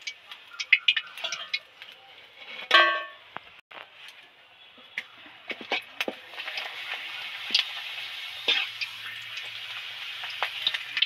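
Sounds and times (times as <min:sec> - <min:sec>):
hot oil hissing: 0:05.8 - 0:11.0.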